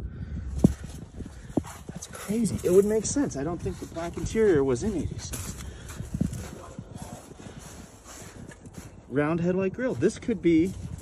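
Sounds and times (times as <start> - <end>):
footsteps on gravel and snow: 0.6 - 9.2, 9.8 - 11.0.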